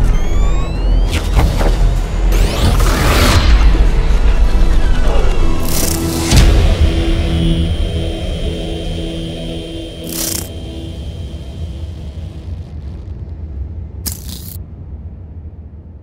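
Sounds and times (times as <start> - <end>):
sustained music tones: 0.0 - 14.0
low rumbling drone: 0.0 - 16.0.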